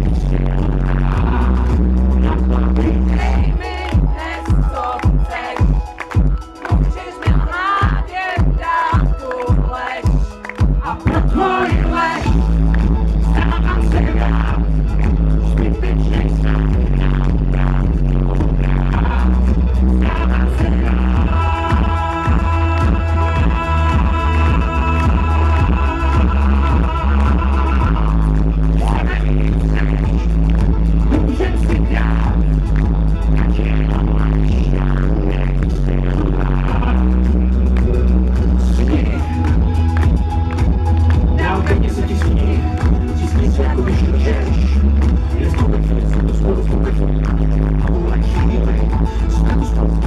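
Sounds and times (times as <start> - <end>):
live pop band through a pa: 0.0 - 50.0.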